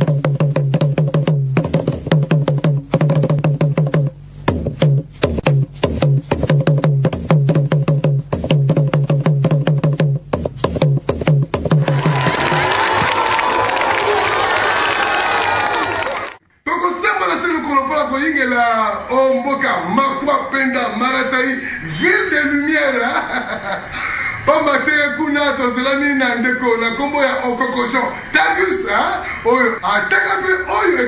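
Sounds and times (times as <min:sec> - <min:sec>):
hand drum played fast: 0:00.0 - 0:12.7
crowd cheering: 0:11.8 - 0:16.4.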